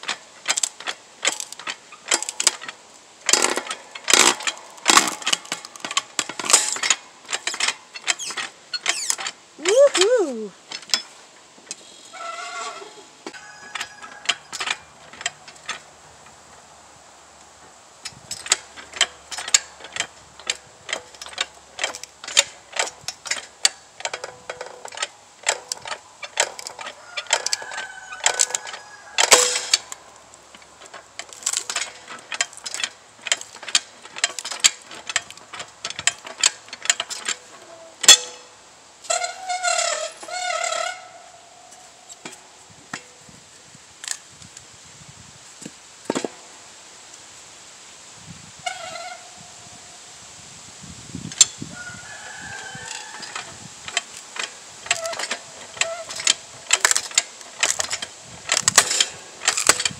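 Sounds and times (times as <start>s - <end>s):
log splitter clicking and creaking: 0.0s - 44.8s, 45.6s - 47.2s, 48.6s - 49.6s, 51.1s - 59.9s
wood cracking: 0.1s - 9.4s, 18.4s - 38.3s, 52.8s - 59.9s.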